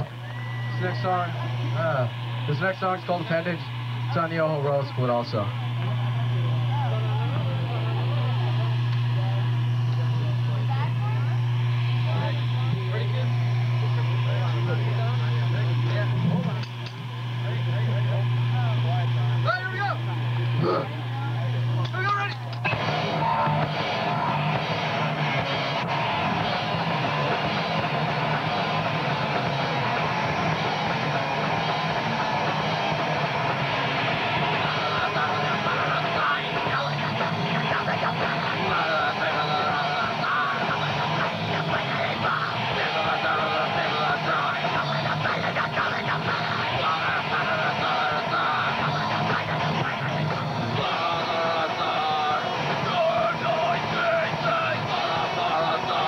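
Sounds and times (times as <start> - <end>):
faint crowd chatter: 0.0 - 56.0
low hum: 0.0 - 56.0
punk band playing: 22.6 - 56.0.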